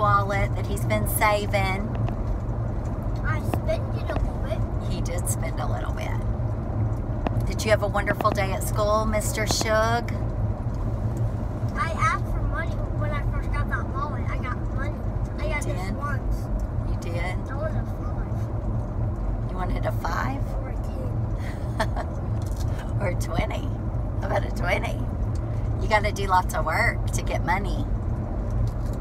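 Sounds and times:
people talking: 0.0s - 2.0s, 3.2s - 6.2s, 7.4s - 10.2s, 11.8s - 18.4s, 19.5s - 22.0s, 22.8s - 25.1s, 25.8s - 27.9s
vehicle cabin road rumble: 0.0s - 29.0s.

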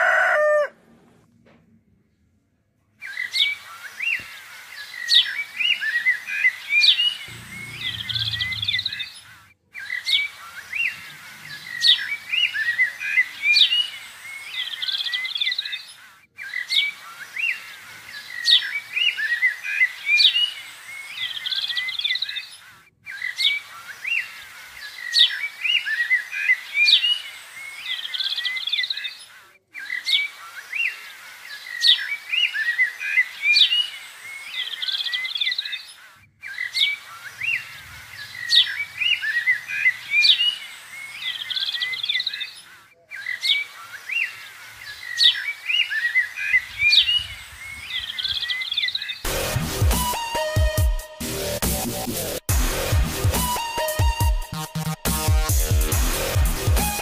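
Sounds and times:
small birds chirping: 3.0s - 49.3s.

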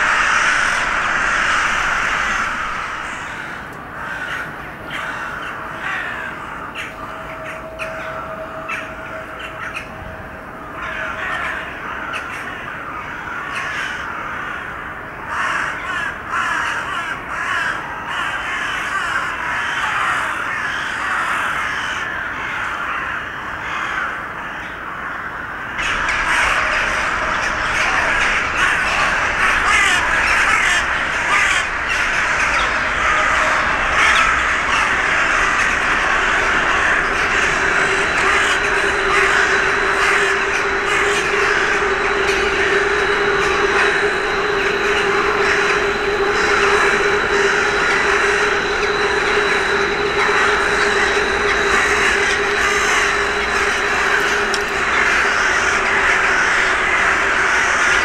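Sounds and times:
crows cawing in chorus: 0.0s - 58.0s.

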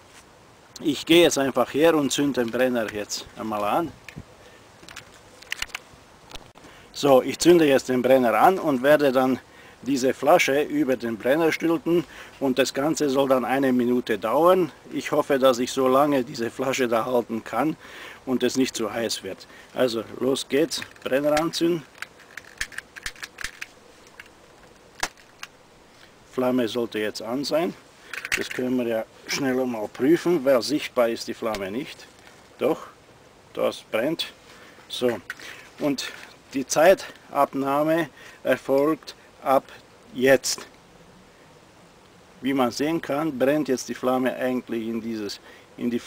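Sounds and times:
faint background hiss: 0.0s - 46.0s
small clicks: 4.8s - 6.5s, 20.8s - 25.6s.

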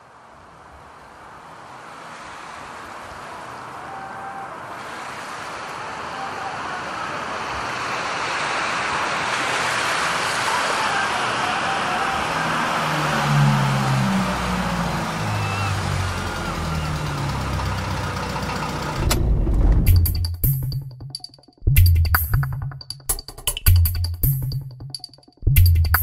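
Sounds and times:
ambient noise wash: 0.0s - 17.0s.

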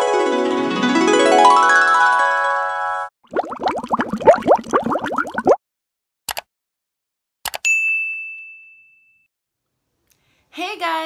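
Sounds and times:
rising bubbly bloops: 3.2s - 5.6s
short clicks: 6.3s - 6.5s
bell-like ding: 7.7s - 9.3s.

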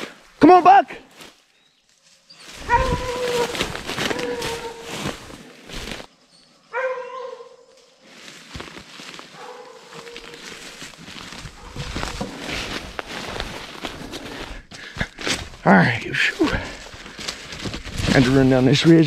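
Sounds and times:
rustling noise: 1.9s - 6.1s, 8.0s - 19.0s
hounds bawling: 2.6s - 5.1s.

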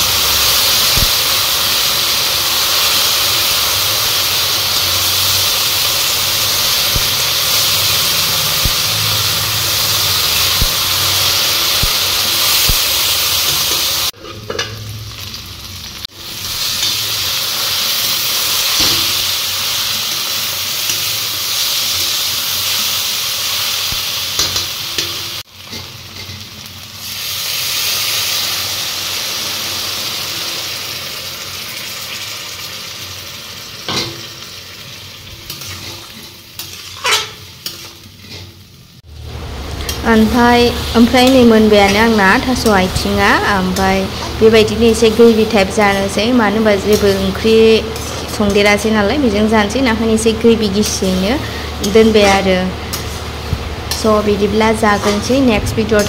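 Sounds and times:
green beans sizzling: 0.0s - 56.0s
metal spatula scraping pan: 13.5s - 14.9s, 35.5s - 38.6s, 40.9s - 49.0s, 50.6s - 56.0s.

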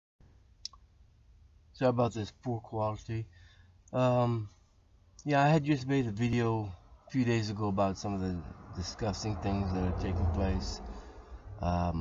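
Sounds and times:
man speaking: 1.8s - 3.3s, 3.9s - 4.5s, 5.2s - 10.8s, 11.6s - 12.0s.

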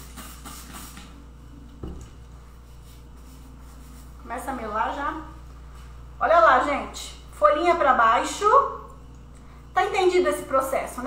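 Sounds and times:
spray bottle squirting: 0.0s - 1.2s.

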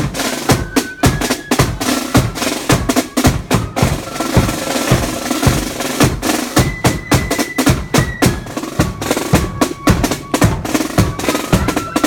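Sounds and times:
side drums and bass drum march: 0.0s - 12.0s
faint high held flute notes: 0.5s - 4.5s, 6.5s - 12.0s.

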